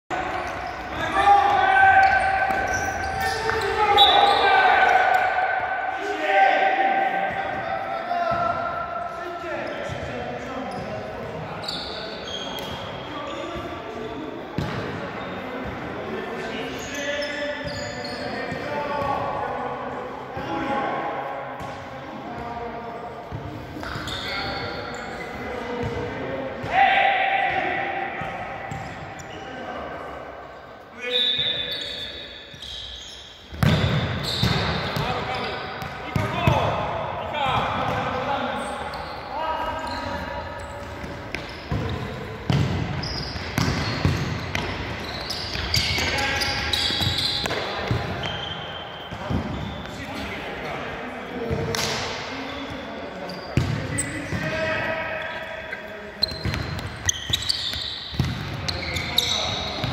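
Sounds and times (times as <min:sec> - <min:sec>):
players calling out: 0:00.2 - 0:09.2.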